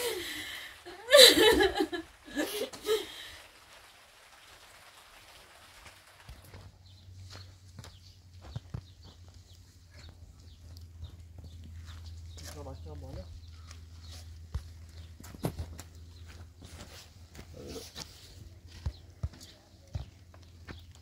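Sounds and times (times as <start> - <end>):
scuffs and footfalls on concrete: 6.4 - 21.0.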